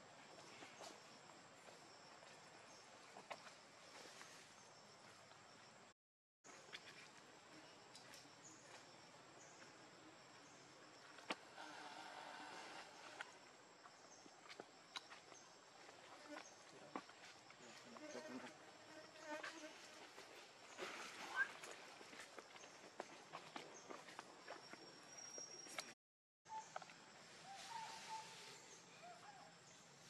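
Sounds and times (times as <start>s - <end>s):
insects buzzing: 9.4s - 21.5s.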